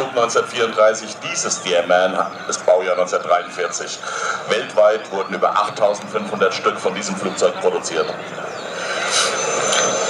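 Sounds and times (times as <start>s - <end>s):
propeller plane engine in flight: 8.1s - 10.0s.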